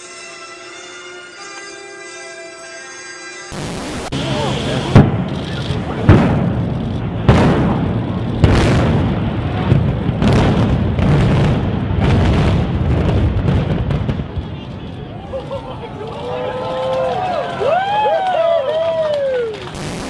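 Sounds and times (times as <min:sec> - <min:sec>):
loud bangs: 0:03.6 - 0:15.1
low rumble: 0:03.6 - 0:15.3.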